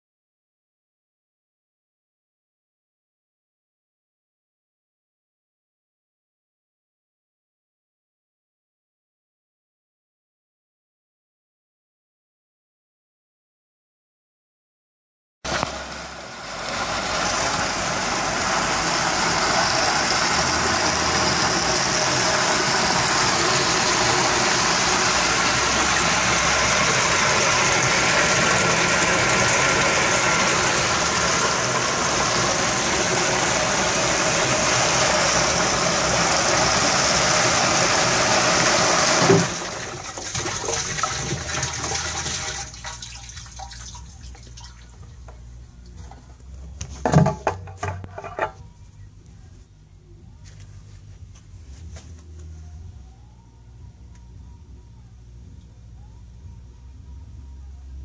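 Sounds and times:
water jet spraying inside jug: 0:15.5 - 0:44.9.

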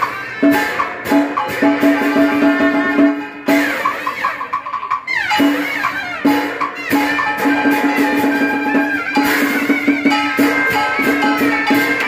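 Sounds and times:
drum strokes: 0:00.0 - 0:12.0
reed horn wavering melody: 0:00.0 - 0:12.0.

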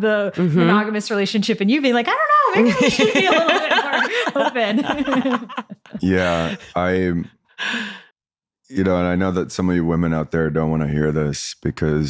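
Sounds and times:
person speaking: 0:00.0 - 0:01.0, 0:02.3 - 0:08.0, 0:08.7 - 0:12.0
breathy sigh: 0:06.0 - 0:08.2.

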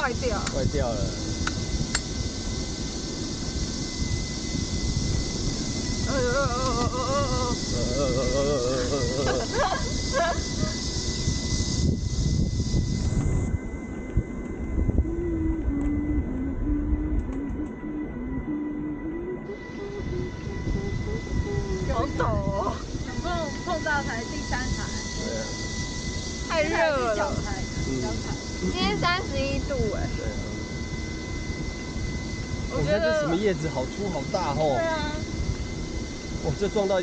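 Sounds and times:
wind: 0:00.0 - 0:37.0
person humming: 0:06.0 - 0:09.9, 0:15.0 - 0:23.4
burst of laughter: 0:08.6 - 0:10.7.

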